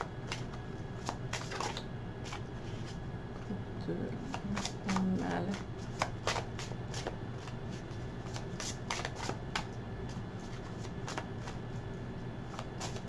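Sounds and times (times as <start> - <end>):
cards being shuffled: 0.2 - 3.0, 4.3 - 11.6, 12.4 - 13.0.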